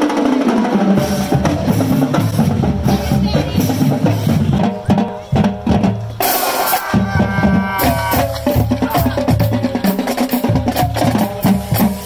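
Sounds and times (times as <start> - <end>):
snare and bass drums beating: 0.0 - 12.0
brass chords: 0.7 - 9.9.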